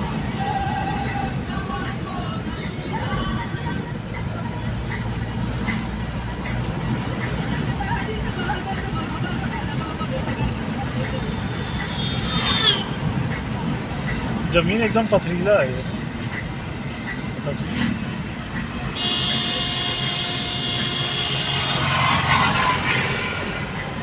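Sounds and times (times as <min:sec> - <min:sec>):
faint voices talking: 0:00.0 - 0:20.0
car road and engine noise: 0:00.0 - 0:24.0.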